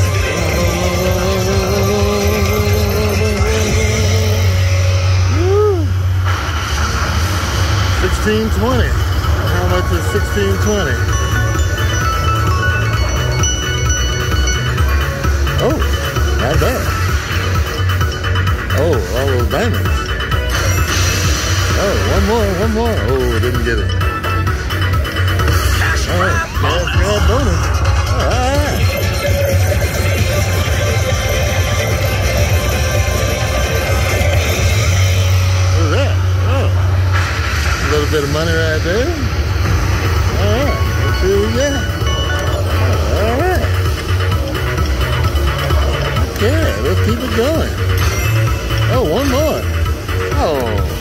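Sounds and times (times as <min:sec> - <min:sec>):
ringing chime tones: 0:00.0 - 0:05.2, 0:09.5 - 0:19.6, 0:28.3 - 0:35.8, 0:40.2 - 0:45.3
pulsing low bass: 0:00.0 - 0:51.0
slot machine electronic music: 0:00.0 - 0:51.0.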